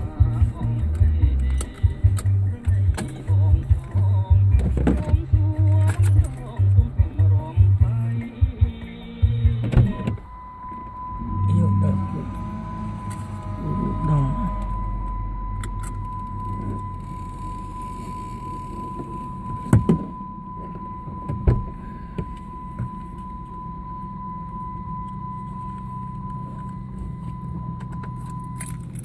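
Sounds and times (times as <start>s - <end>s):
low hum: 0.0s - 29.0s
high electronic tone: 9.6s - 29.0s.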